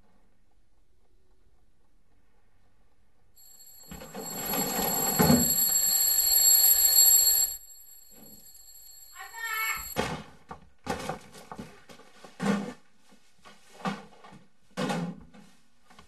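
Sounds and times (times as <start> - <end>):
bell ringing loudly: 3.4 - 10.0
thin steady high tone: 3.4 - 10.0.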